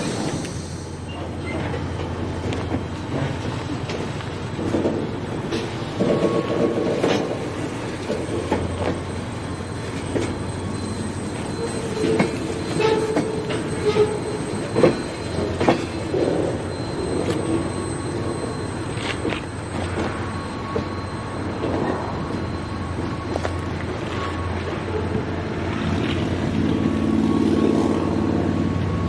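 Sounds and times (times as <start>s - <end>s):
wheel squeals: 0.0s - 26.3s
train wheels rumbling on rails: 0.0s - 29.0s.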